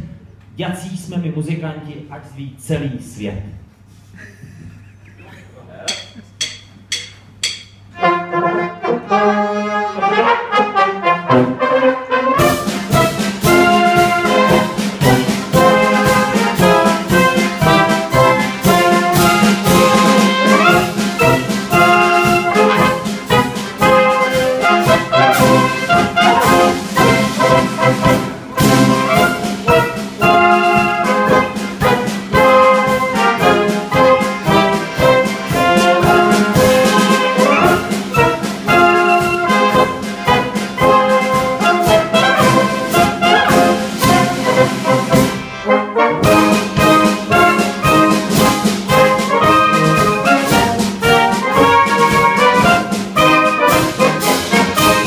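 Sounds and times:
brass band playing: 7.8s - 55.0s
bass drum beat: 12.6s - 45.4s.

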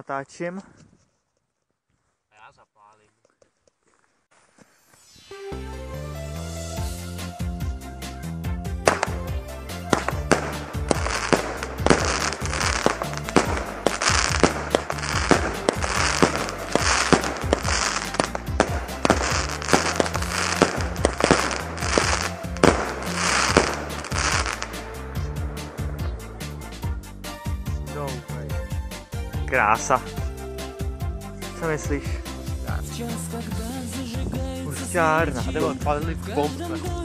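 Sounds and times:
firework crackling: 4.3s - 5.6s, 8.8s - 26.9s
firework hiss: 4.3s - 5.6s, 8.9s - 26.0s
background music: 5.1s - 37.0s
firework shots banging: 8.8s - 26.0s.

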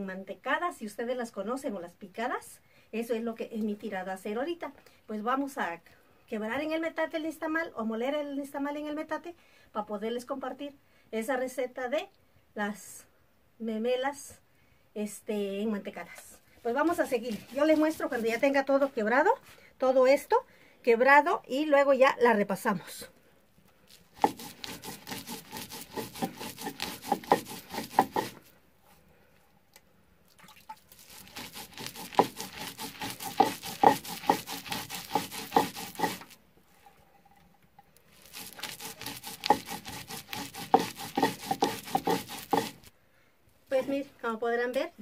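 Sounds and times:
stone grinding corn: 16.7s - 18.6s, 24.0s - 28.5s, 30.9s - 36.4s, 38.1s - 42.9s.

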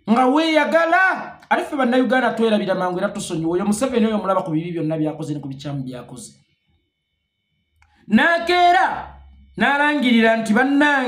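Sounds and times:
man speaking: 0.0s - 6.4s, 8.1s - 11.0s.

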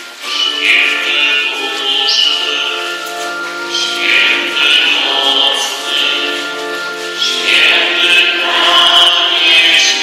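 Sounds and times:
organ-like held chords: 0.2s - 10.0s
voices singing: 0.2s - 10.0s.

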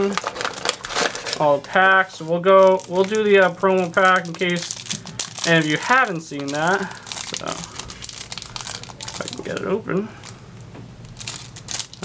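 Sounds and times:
packaging crinkling and scratching: 0.0s - 10.4s, 11.0s - 12.0s
sharp crackles: 2.6s - 9.6s.

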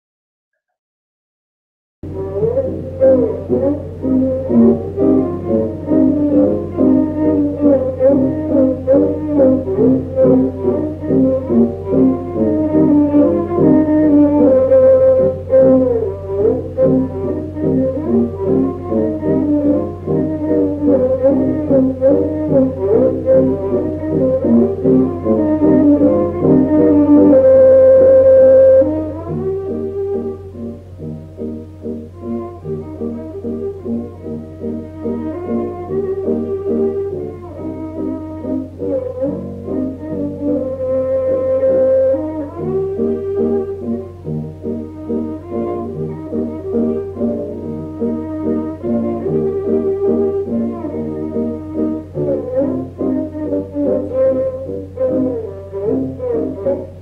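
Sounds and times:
klezmer band music: 2.0s - 57.0s.

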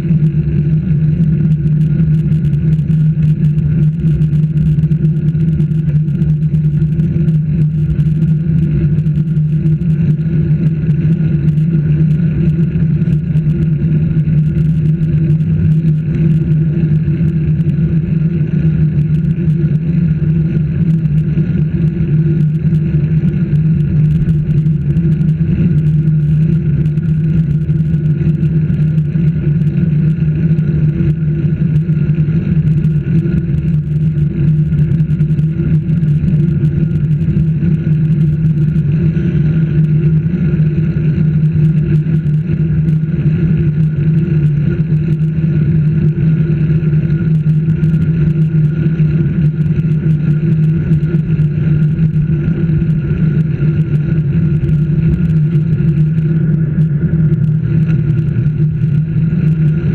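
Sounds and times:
wind and road rumble: 0.0s - 59.9s.

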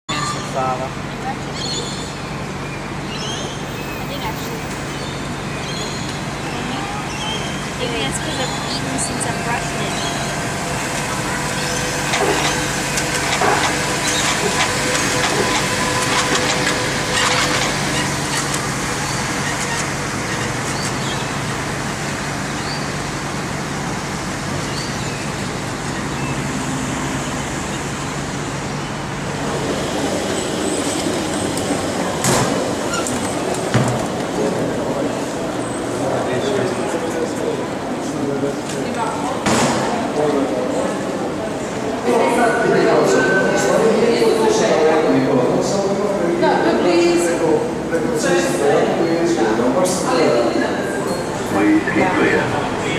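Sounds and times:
city traffic noise: 0.0s - 52.9s
voices in indoor hall: 0.1s - 24.5s, 27.8s - 52.9s
monorail train running: 0.1s - 52.9s.

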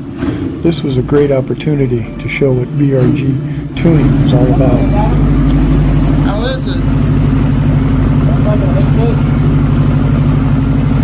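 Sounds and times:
motorcycle engine idling: 3.4s - 11.0s.

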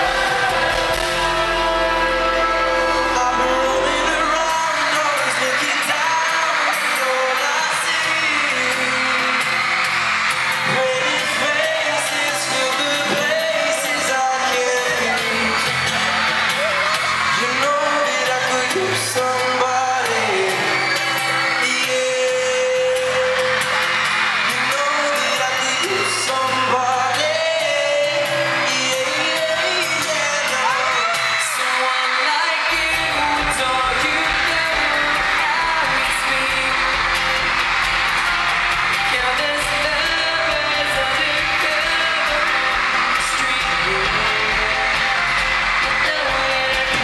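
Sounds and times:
acoustic guitar: 0.0s - 47.0s
fans screaming: 0.0s - 47.0s
live pop vocals: 0.0s - 47.0s.

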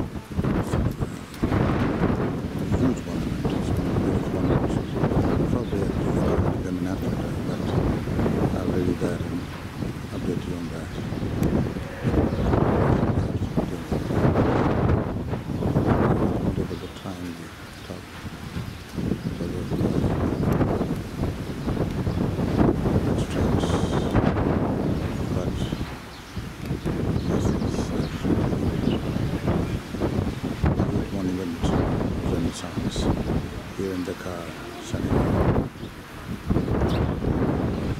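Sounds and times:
wind buffeting microphone: 0.0s - 37.9s.

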